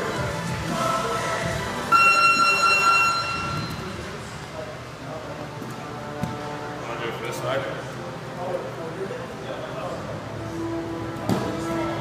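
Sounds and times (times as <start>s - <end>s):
electronic buzzer tone: 1.9s - 3.9s.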